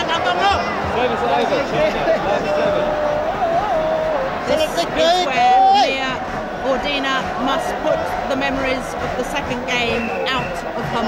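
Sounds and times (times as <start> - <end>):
crowd hubbub: 0.0 - 11.0
spectators shouting: 0.0 - 11.0.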